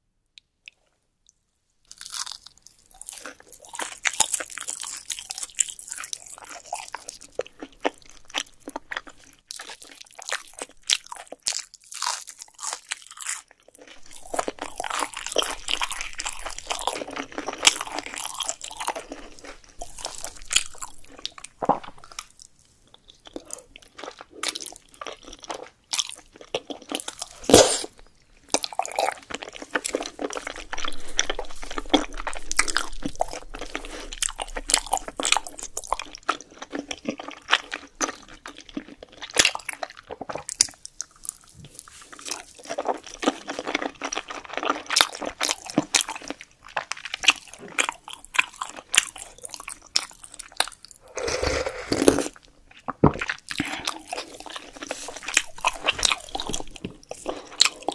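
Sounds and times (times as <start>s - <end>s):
crunchy chewing: 1.9s - 57.9s.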